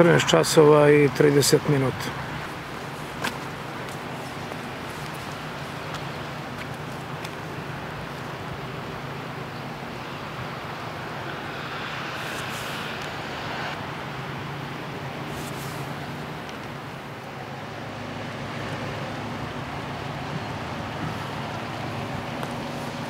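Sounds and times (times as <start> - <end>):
river rushing: 0.0 - 23.0.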